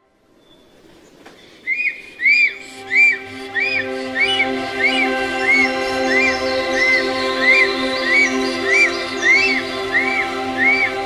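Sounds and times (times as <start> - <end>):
bird whistling call: 1.4 - 11.0
soft sustained music pad: 2.1 - 11.0.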